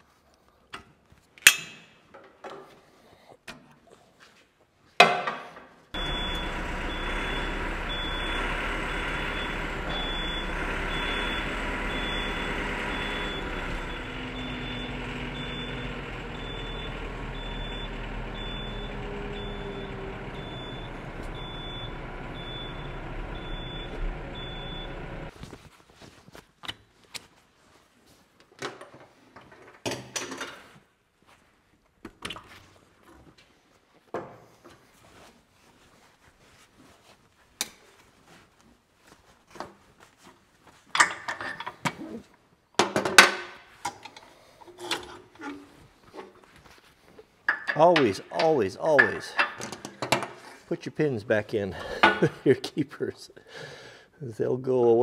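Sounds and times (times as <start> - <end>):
short high warning beep: 6.0 - 25.0
tractor engine running: 6.0 - 25.3.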